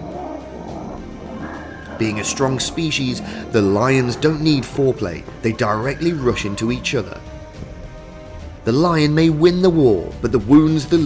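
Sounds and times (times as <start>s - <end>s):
lions growling: 0.0s - 8.6s
background music: 0.0s - 11.0s.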